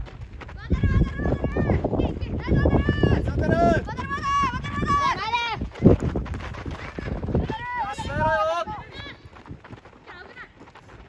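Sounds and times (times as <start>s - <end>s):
children shouting: 2.4s - 5.6s.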